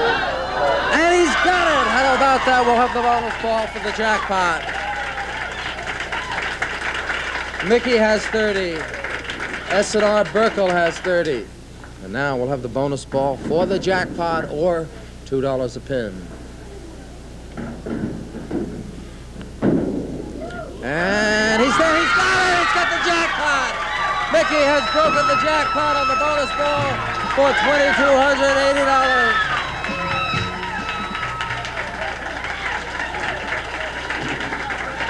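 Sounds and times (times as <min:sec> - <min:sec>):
audience applauding: 0:00.0 - 0:11.5, 0:20.9 - 0:35.0
audience cheering: 0:00.0 - 0:11.5, 0:20.3 - 0:35.0
bowling ball hitting pins: 0:13.1 - 0:14.8, 0:17.6 - 0:20.8, 0:23.9 - 0:32.2, 0:32.9 - 0:35.0.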